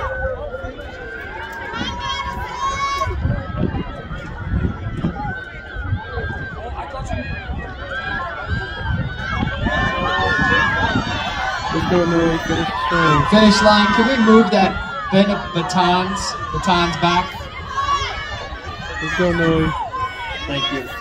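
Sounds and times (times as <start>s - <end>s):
spectators cheering and shouting: 0.0s - 21.0s.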